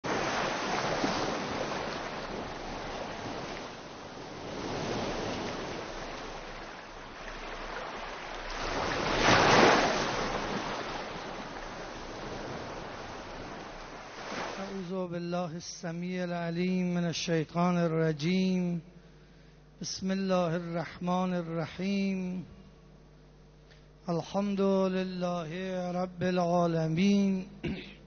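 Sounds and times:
ocean surf washing onto shore: 0:00.0 - 0:15.0.

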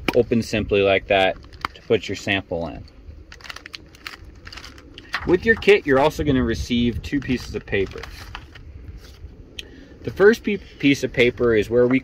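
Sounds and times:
low background rumble: 0:00.0 - 0:12.0
plastic bag crinkling: 0:03.3 - 0:06.2, 0:07.0 - 0:08.6.

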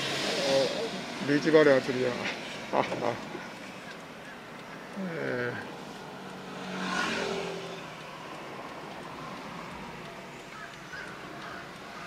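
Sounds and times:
road and tyre noise inside car: 0:00.0 - 0:12.0.

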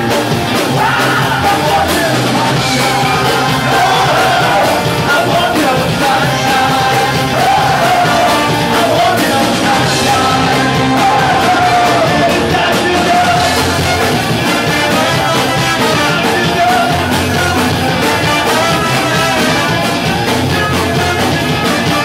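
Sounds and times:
live band playing upbeat music: 0:00.0 - 0:22.0
man singing lead: 0:00.0 - 0:22.0
trombone playing: 0:00.0 - 0:22.0.

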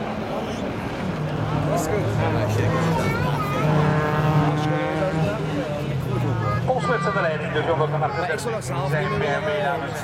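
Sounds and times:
race car engines running: 0:00.0 - 0:10.0.

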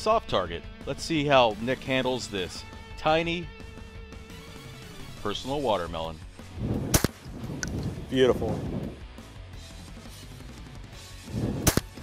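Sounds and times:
faint background music: 0:00.0 - 0:12.0
shotgun firing: 0:06.8 - 0:07.4, 0:11.5 - 0:12.0.

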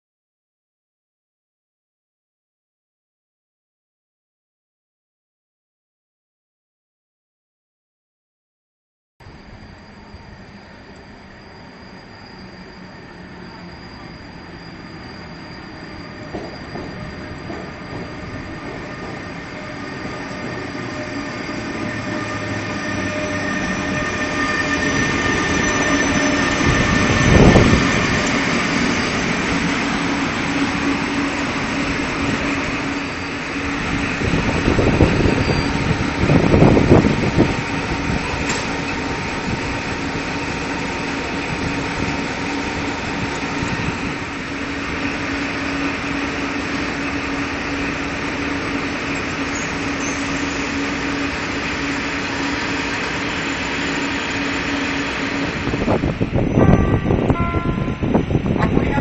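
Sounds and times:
rumble of train wheels: 0:09.2 - 0:59.0
train rolling with motor hum: 0:09.2 - 0:59.0.

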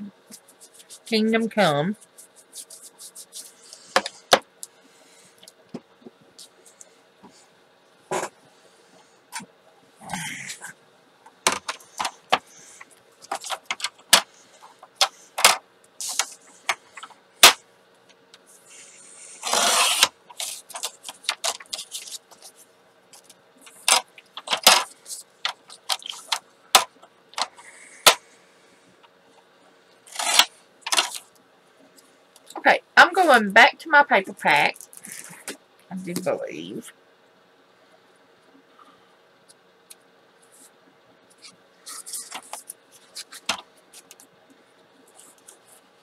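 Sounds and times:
trimmer blade slicing paper: 0:19.4 - 0:22.0, 0:30.1 - 0:30.5.

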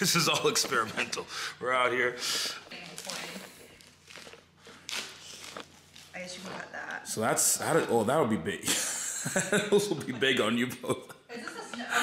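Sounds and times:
plastic bag crinkling: 0:02.6 - 0:06.3.

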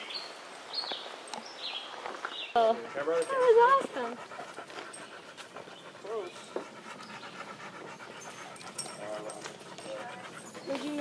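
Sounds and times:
dog panting: 0:02.6 - 0:11.0.

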